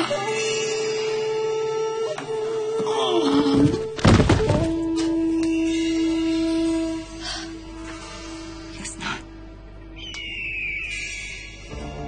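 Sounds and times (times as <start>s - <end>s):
dramatic film score: 0.0s - 12.0s.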